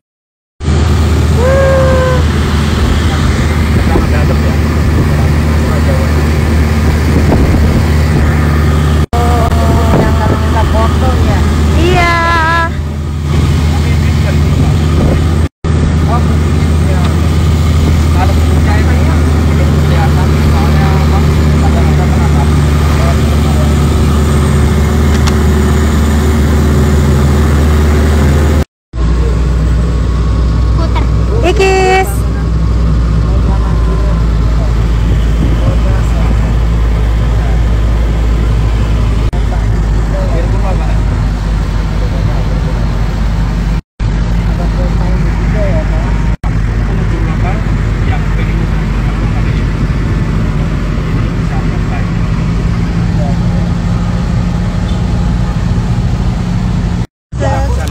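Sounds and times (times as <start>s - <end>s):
jeep engine running: 0.6s - 57.9s
road noise: 0.6s - 57.9s.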